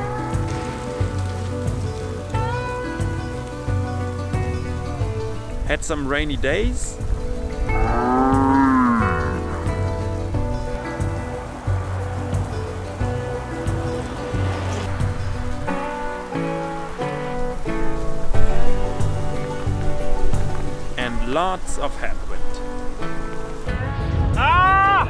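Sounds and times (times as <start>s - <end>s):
background music with steady beat: 0.0s - 21.5s.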